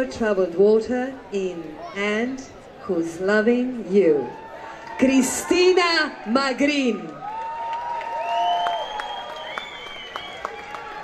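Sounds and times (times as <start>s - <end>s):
audience applauding and cheering: 7.1s - 11.0s.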